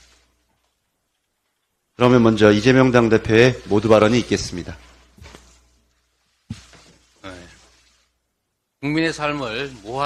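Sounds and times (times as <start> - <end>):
man speaking: 2.0 - 4.9, 8.8 - 10.0.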